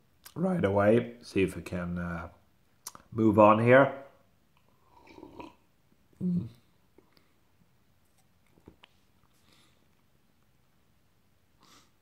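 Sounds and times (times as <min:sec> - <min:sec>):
wet mouth clicks: 0:02.8 - 0:03.0
sip and swallow: 0:04.6 - 0:05.6.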